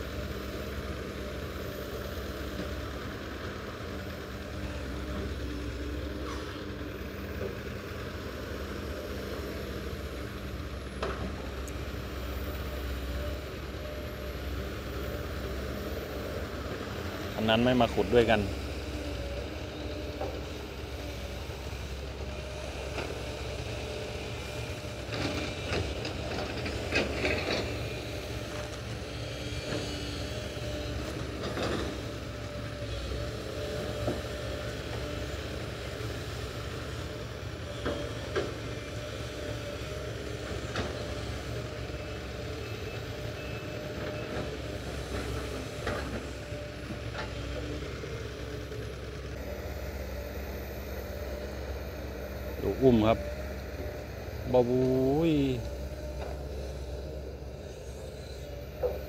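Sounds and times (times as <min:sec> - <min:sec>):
excavator diesel engine running: 0:00.0 - 0:59.0.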